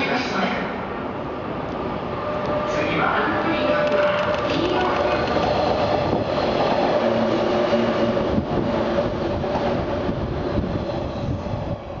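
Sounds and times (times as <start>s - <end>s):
electric train passing: 0.1s - 12.0s.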